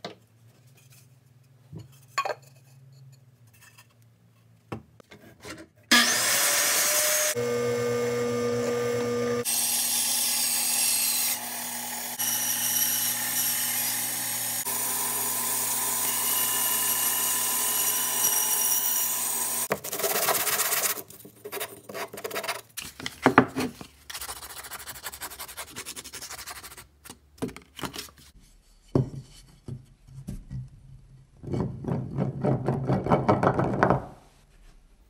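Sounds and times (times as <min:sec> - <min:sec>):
power tool cutting wood: 0:05.9 - 0:19.7.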